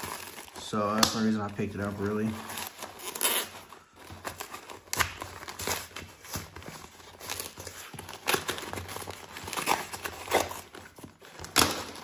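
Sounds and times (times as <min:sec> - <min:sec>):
paper envelope crinkling and tearing: 0:00.0 - 0:12.0.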